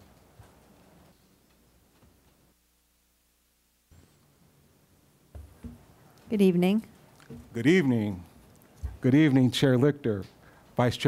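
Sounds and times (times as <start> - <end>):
soft knocks: 5.3 - 5.9.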